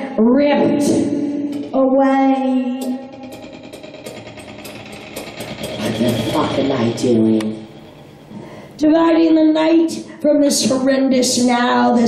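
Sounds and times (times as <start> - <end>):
cymbal wash ringing: 5.6 - 8.8.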